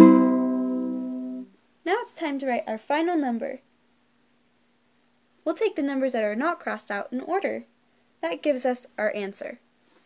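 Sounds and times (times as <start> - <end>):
strummed chord on plucked strings: 0.0 - 1.5.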